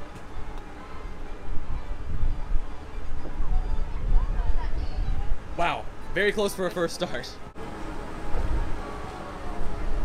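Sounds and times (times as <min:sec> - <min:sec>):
wind buffeting microphone: 0:00.0 - 0:06.1.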